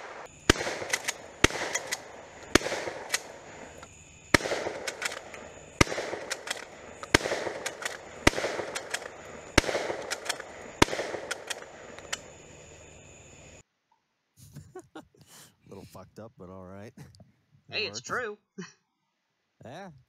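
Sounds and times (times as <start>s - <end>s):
pistol shots with echo: 0.0s - 3.7s, 4.3s - 12.3s.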